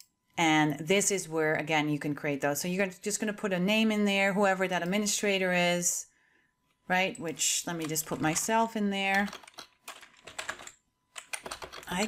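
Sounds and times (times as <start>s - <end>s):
keyboard typing: 7.2s - 12.0s.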